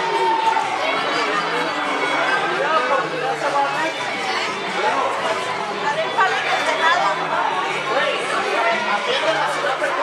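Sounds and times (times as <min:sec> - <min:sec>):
overlapping crowd chatter: 0:00.0 - 0:10.0.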